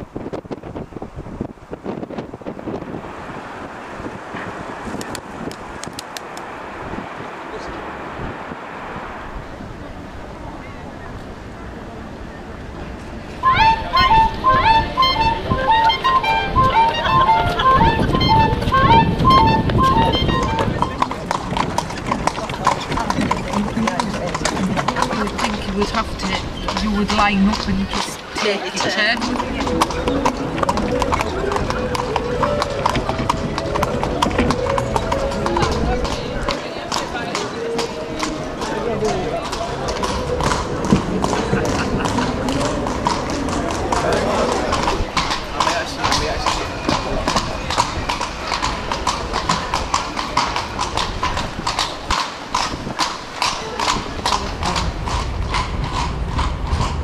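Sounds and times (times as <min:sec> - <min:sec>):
horse hooves on stone paving: 0:04.1 - 0:06.5, 0:13.0 - 0:57.0
faint voices: 0:07.1 - 0:56.0.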